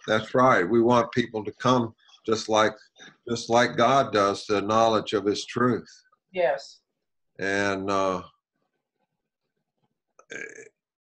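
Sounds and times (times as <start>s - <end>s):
man making throaty sound: 7.4s - 8.2s, 10.3s - 10.7s.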